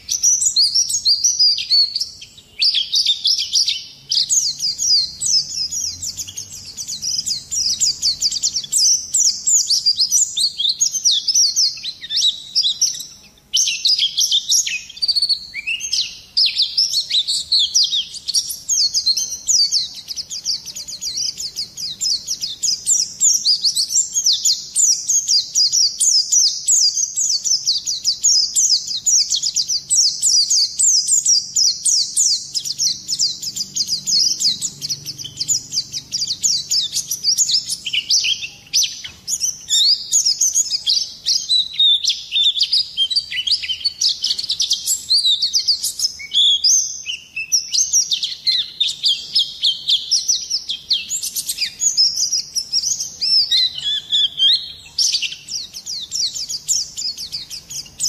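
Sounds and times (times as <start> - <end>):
bird singing high twittering song: 0.0 - 58.0.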